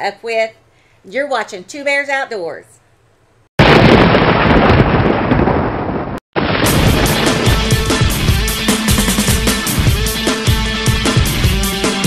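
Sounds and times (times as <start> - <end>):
thunder rumbling crash: 3.6 - 9.9.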